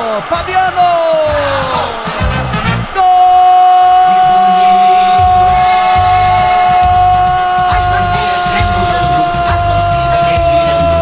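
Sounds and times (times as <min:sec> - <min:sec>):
commentator shouting goal: 0:00.0 - 0:02.2, 0:02.8 - 0:11.0
jingle music with steady beat: 0:05.1 - 0:10.9.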